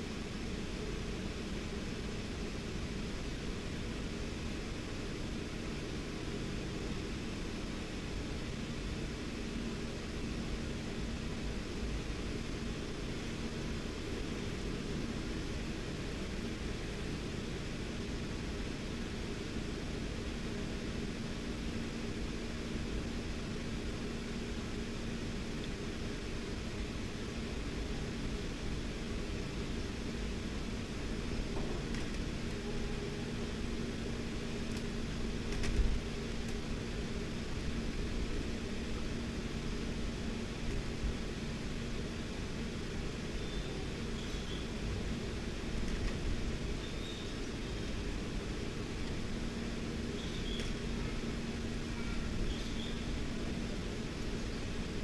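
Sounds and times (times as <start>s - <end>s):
low hum and hiss: 0.0s - 55.0s.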